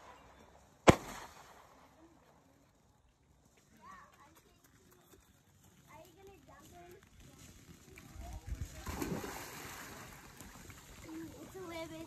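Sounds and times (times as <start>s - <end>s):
faint distant voices: 1.5s - 12.0s.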